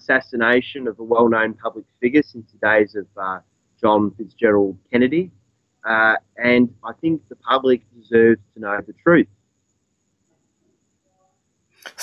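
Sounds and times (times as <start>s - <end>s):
man starting to speak: 0.0s - 5.3s, 5.9s - 9.2s.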